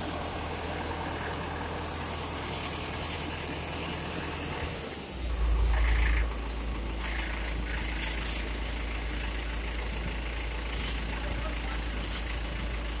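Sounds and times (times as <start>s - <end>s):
diesel engine humming: 0.0s - 13.0s.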